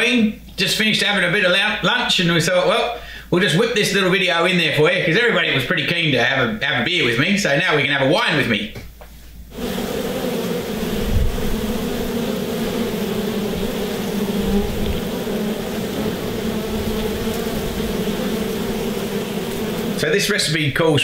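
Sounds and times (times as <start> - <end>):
honeybees buzzing: 9.5 - 20.6.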